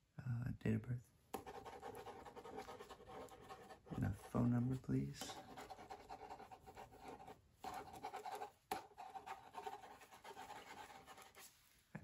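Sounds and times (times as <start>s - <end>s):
pen scratching on paper: 1.4s - 4.4s, 5.2s - 11.5s.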